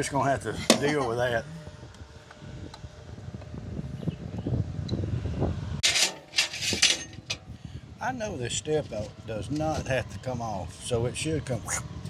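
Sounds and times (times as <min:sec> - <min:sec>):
wind buffeting microphone: 0:00.0 - 0:12.0
scraping and rustling: 0:05.8 - 0:07.5.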